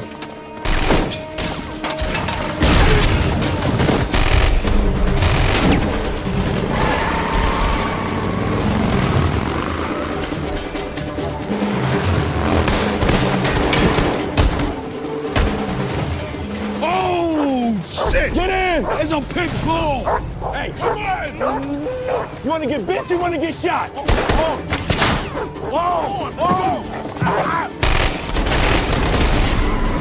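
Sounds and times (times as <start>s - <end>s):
action film music: 0.0s - 30.0s
gunfire: 2.6s - 6.0s, 24.1s - 25.3s, 27.8s - 30.0s.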